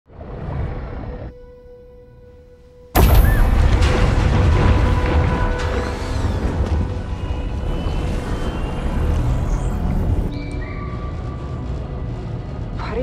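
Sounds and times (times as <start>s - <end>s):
sparse film music: 0.2s - 13.0s.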